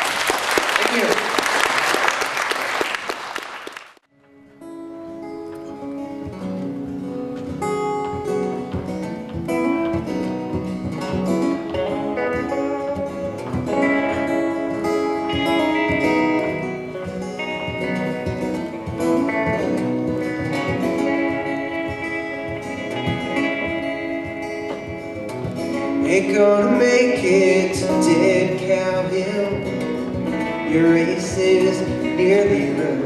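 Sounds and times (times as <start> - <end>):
acoustic guitar strumming: 4.1 - 33.0
electric guitar melody: 4.1 - 33.0.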